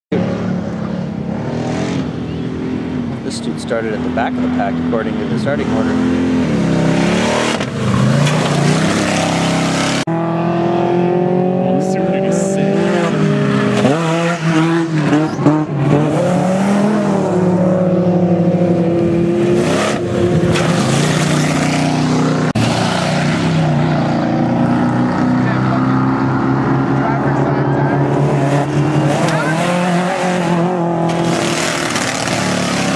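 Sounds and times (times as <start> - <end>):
truck engine revving hard: 0.1 - 2.9, 3.7 - 32.9.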